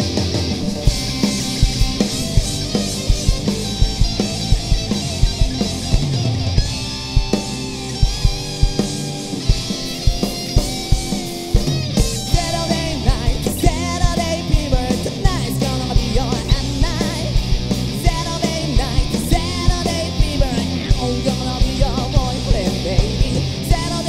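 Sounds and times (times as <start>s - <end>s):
bass guitar: 0.0s - 24.0s
drum kit beat: 0.0s - 24.0s
electric guitars: 0.0s - 24.0s.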